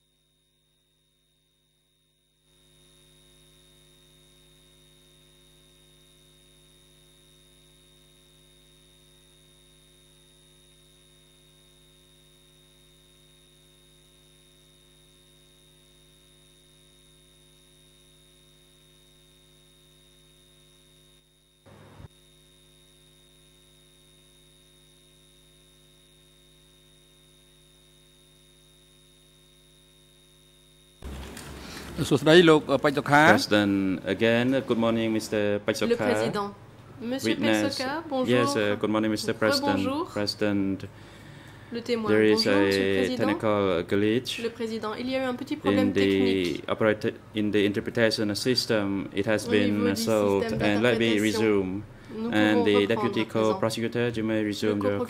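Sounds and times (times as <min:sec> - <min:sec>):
faint mains hum: 0:00.0 - 0:55.0.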